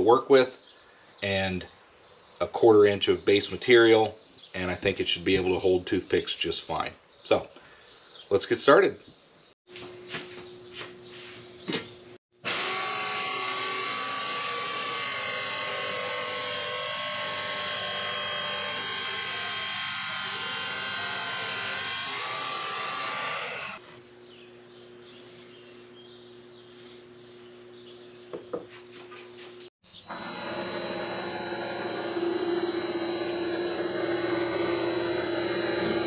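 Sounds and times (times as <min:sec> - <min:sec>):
bandsaw cutting metal bar: 0:12.4 - 0:23.8, 0:30.1 - 0:36.0
lathe motor humming and whining: 0:12.5 - 0:23.8, 0:30.1 - 0:36.0.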